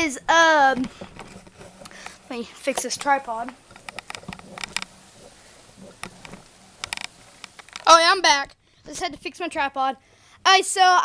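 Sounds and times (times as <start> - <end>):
tripod clicks and knocks: 3.6 - 5.0, 6.0 - 7.9.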